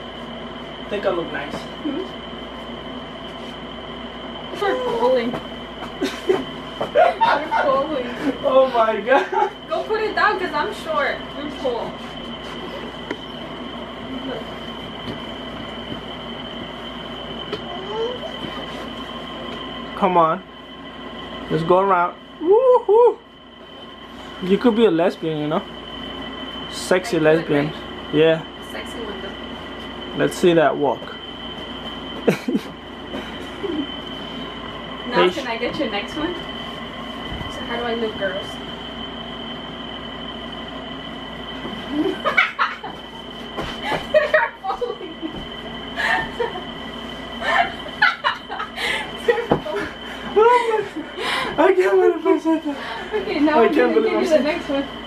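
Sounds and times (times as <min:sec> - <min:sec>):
background hiss and hum: 0:00.0 - 0:55.0
high steady whine: 0:00.0 - 0:55.0.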